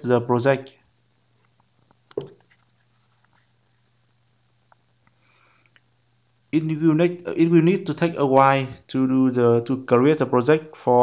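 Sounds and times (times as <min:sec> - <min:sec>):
low microphone hum: 0:00.0 - 0:11.0.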